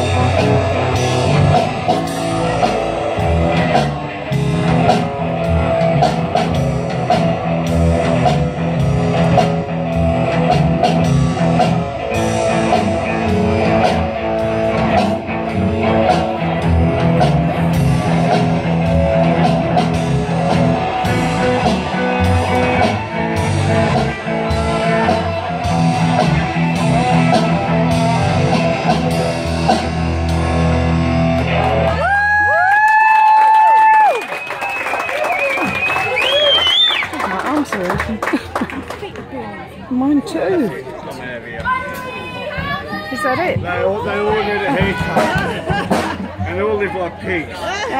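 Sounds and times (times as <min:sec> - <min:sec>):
steady drum beat: 0:00.0 - 0:31.6, 0:43.1 - 0:46.4
rock band playing: 0:00.0 - 0:39.0, 0:41.7 - 0:47.9.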